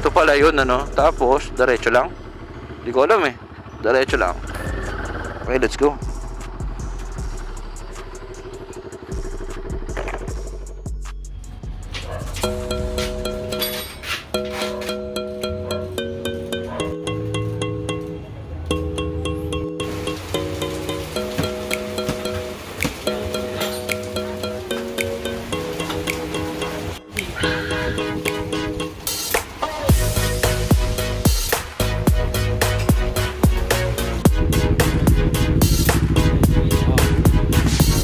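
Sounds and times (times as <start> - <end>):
motorcycle low rumble: 0.0 - 38.0
background music with chords: 9.1 - 38.0.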